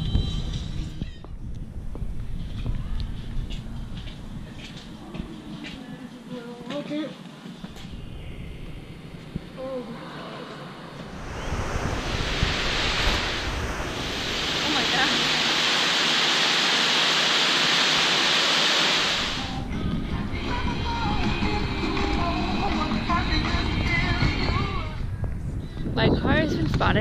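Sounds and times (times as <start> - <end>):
faint music: 0.0 - 11.1
rush of falling water: 11.0 - 19.6.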